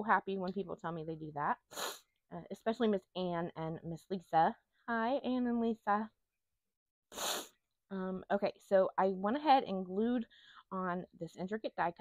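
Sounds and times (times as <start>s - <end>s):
person hissing: 1.7s - 2.1s, 7.1s - 7.6s.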